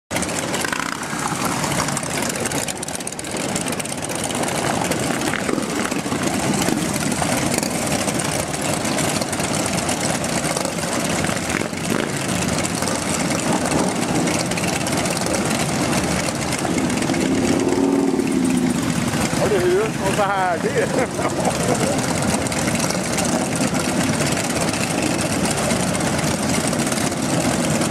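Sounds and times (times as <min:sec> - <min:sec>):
motorcycles idling: 0:00.1 - 0:27.9.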